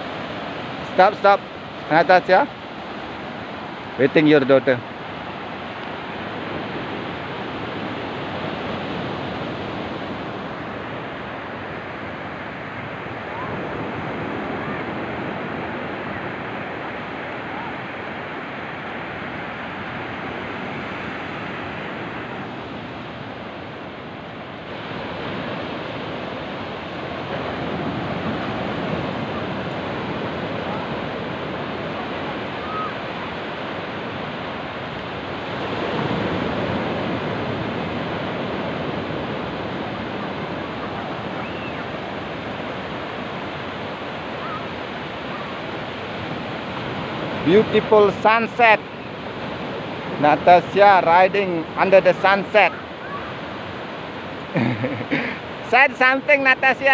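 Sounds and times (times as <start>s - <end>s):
ocean surf breaking on beach: 0.0s - 56.9s.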